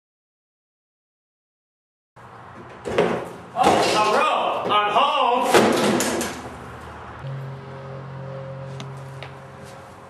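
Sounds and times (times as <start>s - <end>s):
man's voice: 3.6s - 5.6s
door banging open: 5.4s - 6.5s.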